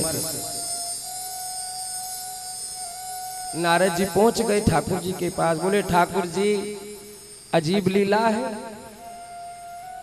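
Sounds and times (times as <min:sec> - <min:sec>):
sound system hiss: 0:00.0 - 0:10.0
steady pure tone: 0:00.0 - 0:10.0.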